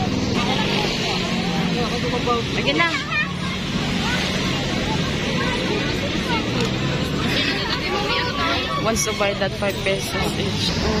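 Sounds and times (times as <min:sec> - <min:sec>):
faint children's voices: 0:00.0 - 0:11.0
vehicle engine running: 0:00.0 - 0:11.0.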